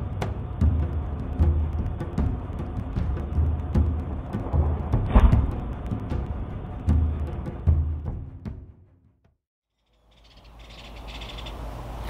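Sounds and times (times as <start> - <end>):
outdoor background noise: 0.0 - 8.3, 9.7 - 12.0
music: 0.0 - 9.4
small birds chirping: 9.7 - 12.0.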